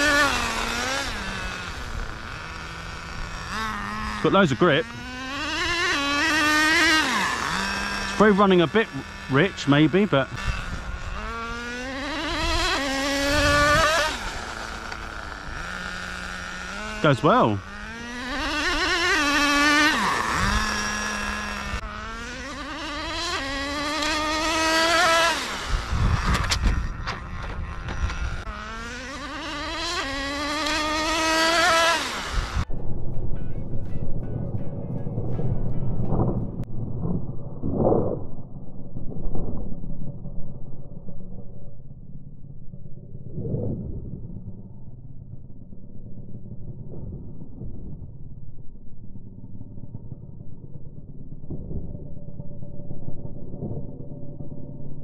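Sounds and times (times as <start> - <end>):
rc car nitro engine screaming: 0.0 - 32.7.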